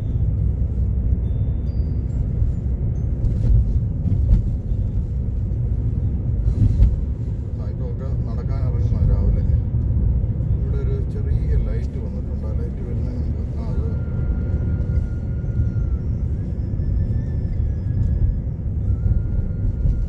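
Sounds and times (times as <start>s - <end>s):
vehicle rumble: 0.0s - 20.0s.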